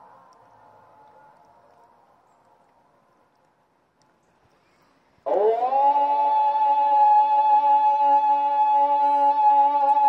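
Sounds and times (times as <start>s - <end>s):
call to prayer over loudspeakers: 5.3s - 10.0s.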